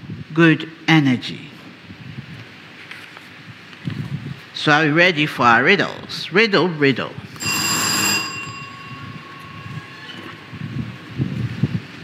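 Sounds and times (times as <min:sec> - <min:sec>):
low background noise: 0:00.0 - 0:12.0
bell-like chime ringing: 0:07.4 - 0:11.2.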